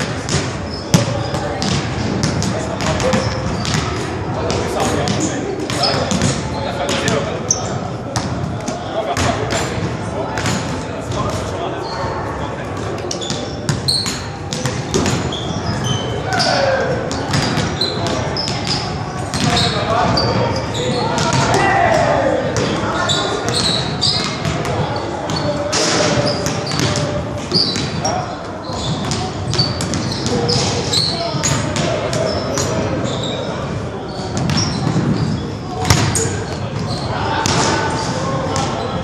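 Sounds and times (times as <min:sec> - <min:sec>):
sneakers squeaking on court: 0:00.0 - 0:39.0
basketballs bouncing on hardwood: 0:00.3 - 0:07.2, 0:13.3 - 0:15.4, 0:17.1 - 0:21.6, 0:26.2 - 0:28.0, 0:34.3 - 0:35.2.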